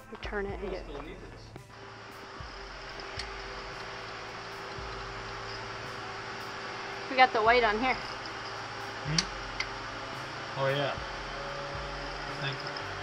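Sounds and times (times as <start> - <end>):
mechanical hum and hiss: 1.7 - 13.0.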